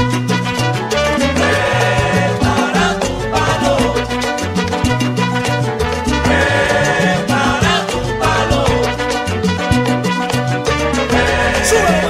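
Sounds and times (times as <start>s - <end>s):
salsa band music: 0.0s - 12.0s.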